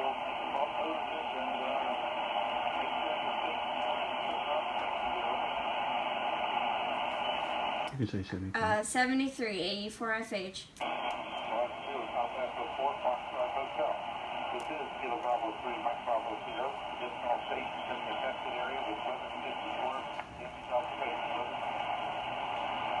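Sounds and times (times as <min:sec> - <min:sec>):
faint voice over radio: 0:00.0 - 0:05.7, 0:10.9 - 0:23.0
shortwave radio static hiss: 0:00.0 - 0:09.5, 0:10.8 - 0:23.0.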